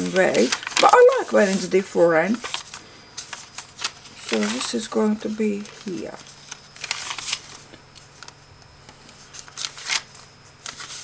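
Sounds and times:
paper pages turning: 0:00.0 - 0:11.0.

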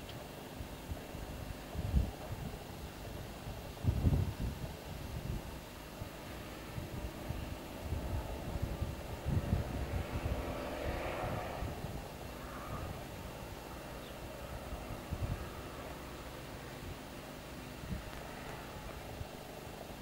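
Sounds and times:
faint outdoor rumble: 0:00.0 - 0:20.0
wind buffeting microphone: 0:00.6 - 0:20.0.

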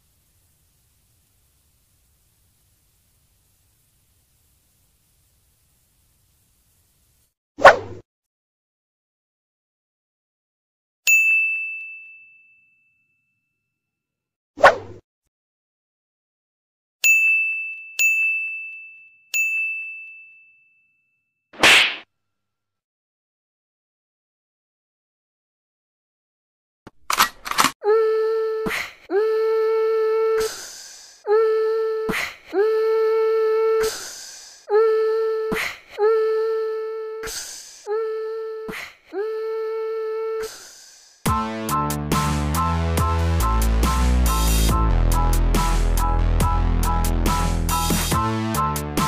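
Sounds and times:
bell-like dings: 0:11.1 - 0:13.6, 0:17.0 - 0:21.3.

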